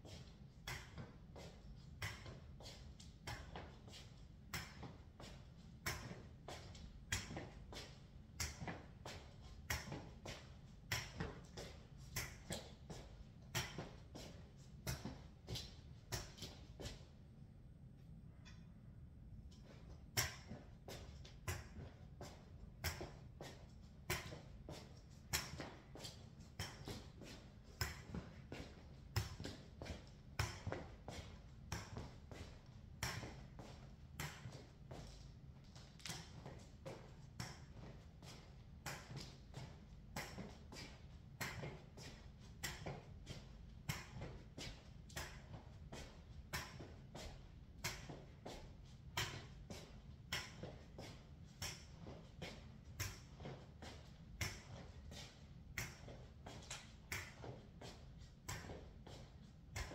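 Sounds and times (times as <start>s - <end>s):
low steady hum: 0.0s - 59.9s.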